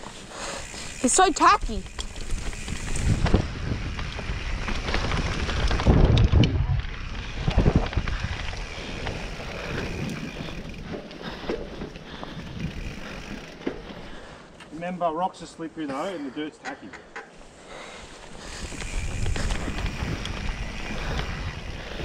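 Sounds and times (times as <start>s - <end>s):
bike rattling and clicking: 0.0s - 14.7s, 16.7s - 22.0s
bike tyres rolling on dirt: 0.0s - 16.0s, 17.3s - 22.0s
wind buffeting microphone: 0.6s - 14.2s, 18.3s - 22.0s.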